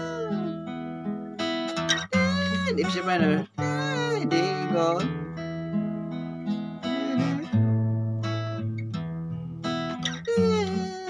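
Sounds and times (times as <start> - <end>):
acoustic guitar picking chords: 0.0 - 11.0.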